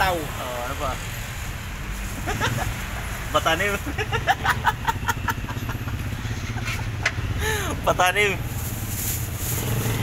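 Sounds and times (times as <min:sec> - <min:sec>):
small vehicle engine running: 0:08.4 - 0:10.0.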